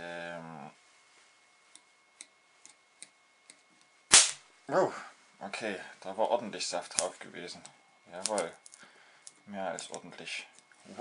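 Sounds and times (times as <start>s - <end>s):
sharp spark crack: 4.1s - 4.5s.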